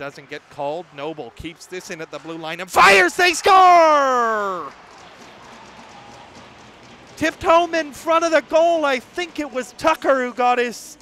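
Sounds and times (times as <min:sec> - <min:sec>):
faint crowd cheering and clapping: 0:00.1 - 0:10.4.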